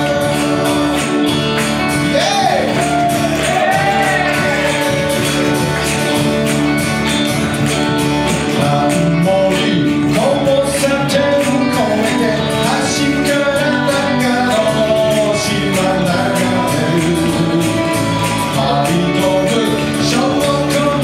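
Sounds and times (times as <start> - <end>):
man singing: 0.0 - 5.5, 8.2 - 21.0
strummed acoustic guitars: 0.0 - 21.0.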